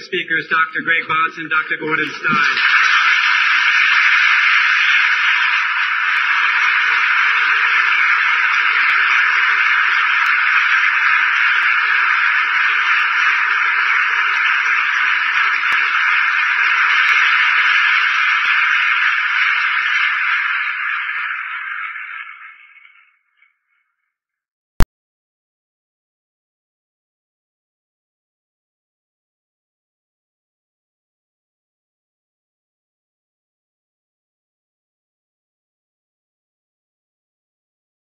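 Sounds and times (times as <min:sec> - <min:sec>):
audience applauding: 0:00.9 - 0:23.2.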